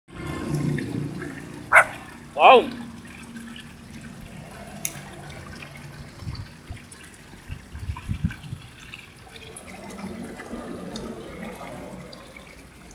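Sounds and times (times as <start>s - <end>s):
water splashing and dripping: 0.1s - 12.9s
small water plops: 0.2s - 12.9s.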